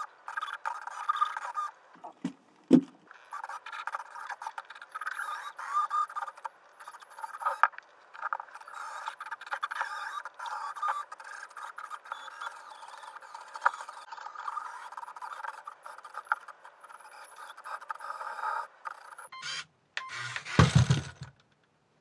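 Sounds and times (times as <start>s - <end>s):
small electric motors whirring: 3.1s - 21.2s
plastic gears clicking and scraping: 3.1s - 21.7s
robot falling with clattering thud: 20.2s - 21.4s.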